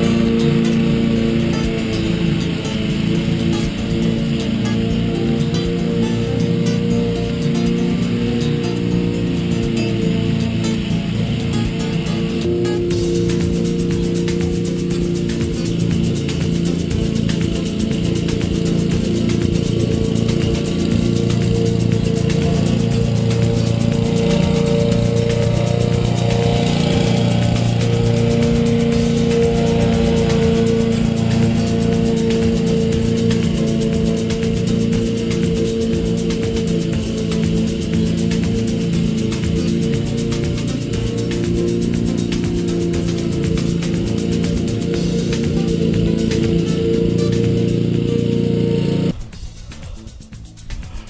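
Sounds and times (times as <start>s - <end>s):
lawn mower engine running: 0.0s - 49.2s
background music: 0.0s - 51.0s.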